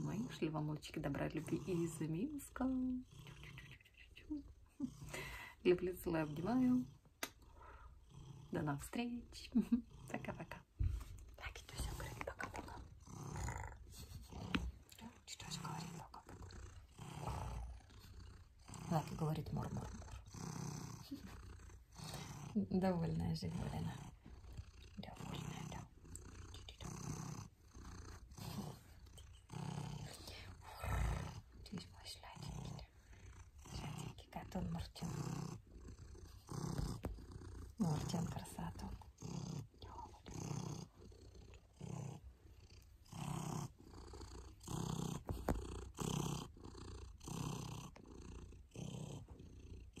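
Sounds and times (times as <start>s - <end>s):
cat purring: 0.0s - 50.0s.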